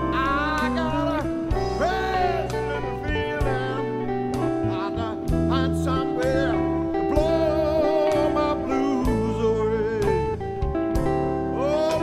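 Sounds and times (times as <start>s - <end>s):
bass and drums: 0.0s - 12.0s
electric blues guitar: 0.0s - 12.0s.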